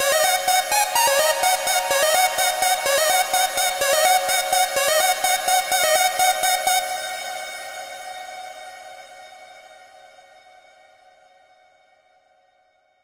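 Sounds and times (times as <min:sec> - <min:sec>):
held synthesizer chord: 0:00.0 - 0:08.1.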